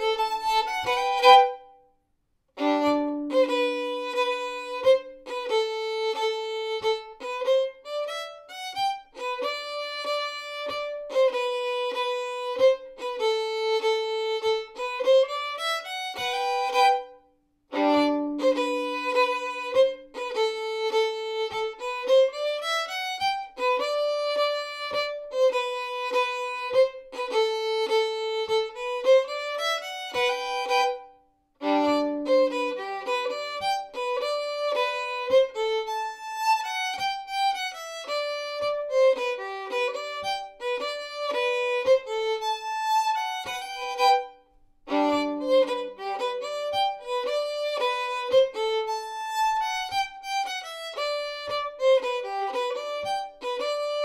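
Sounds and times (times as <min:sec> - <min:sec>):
solo fiddle folk tune: 0:00.0 - 0:01.9, 0:02.5 - 0:54.0.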